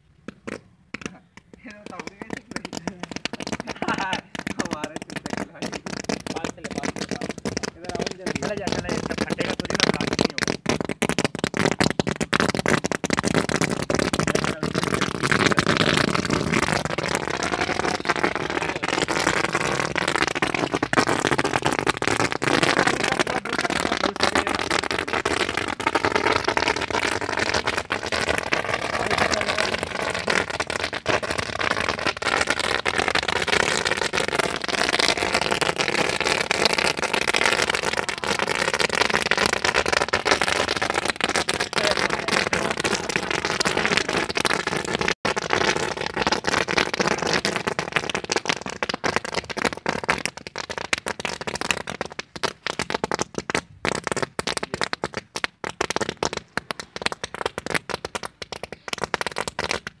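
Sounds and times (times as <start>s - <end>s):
firecrackers crackling and popping: 0.0s - 60.0s.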